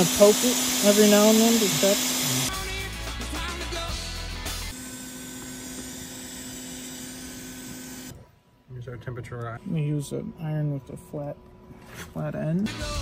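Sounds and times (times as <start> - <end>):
hot-air station hissing: 0.0 - 2.9
background music: 2.3 - 4.8, 12.6 - 13.0.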